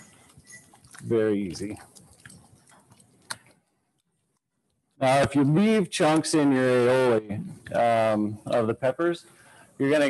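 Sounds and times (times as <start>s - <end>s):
wet squishing stirring: 0.0s - 3.6s.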